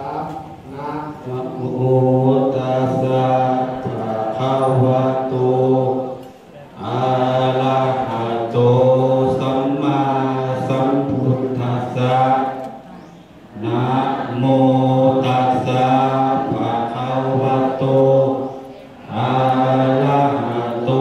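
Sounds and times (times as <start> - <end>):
group chanting in monotone: 0.0 - 21.0.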